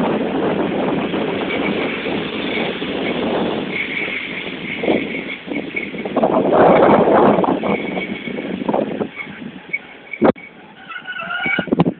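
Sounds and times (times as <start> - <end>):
train coaches rolling past: 0.0 - 11.9
high-pitched wheel squeaks: 1.3 - 11.9.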